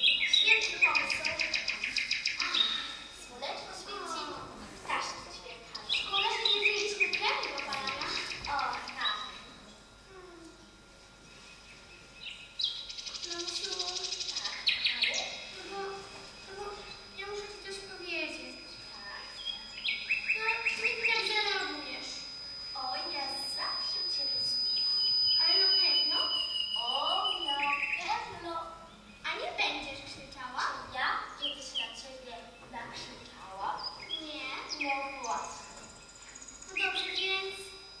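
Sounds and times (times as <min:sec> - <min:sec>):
high bird-like warbling trill: 0:00.0 - 0:04.4, 0:05.0 - 0:32.6, 0:33.3 - 0:38.0.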